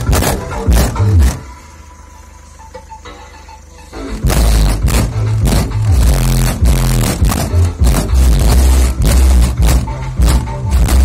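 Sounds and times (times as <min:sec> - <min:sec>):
deep bass notes: 0:00.0 - 0:01.5, 0:03.9 - 0:11.0
sharp drum hits: 0:04.2 - 0:11.0.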